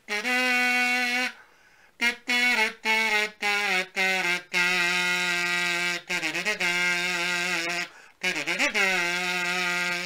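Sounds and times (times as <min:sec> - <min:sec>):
kazoo buzzing a tune: 0:00.0 - 0:10.0.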